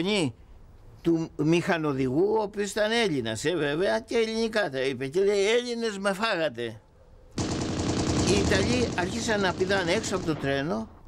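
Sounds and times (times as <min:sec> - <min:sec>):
machine-gun fire: 0:07.4 - 0:10.6
man's voice: 0:08.2 - 0:10.9.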